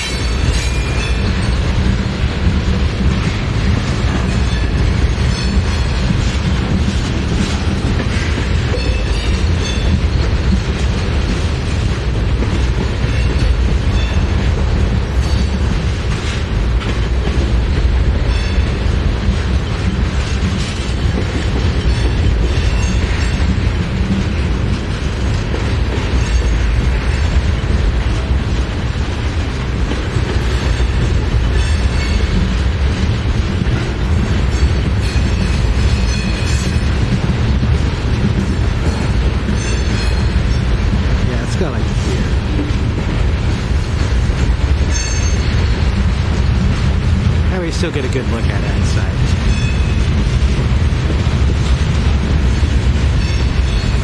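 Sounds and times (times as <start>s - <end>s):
clickety-clack over rail joints: 0.0s - 54.0s
freight train wheels rumbling: 0.0s - 54.0s.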